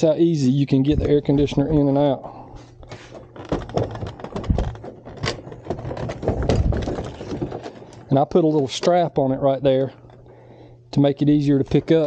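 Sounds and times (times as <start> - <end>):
air conditioner case knocking on wood: 3.4 - 7.8.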